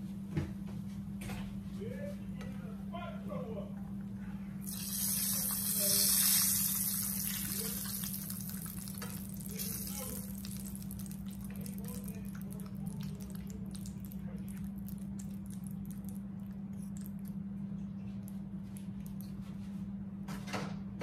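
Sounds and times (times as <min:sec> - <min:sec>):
kitchen tap running: 0:04.6 - 0:15.8.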